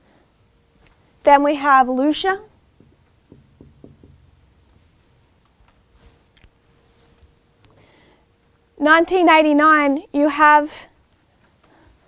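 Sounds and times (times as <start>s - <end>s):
marker writing on whiteboard: 2.1s - 5.2s.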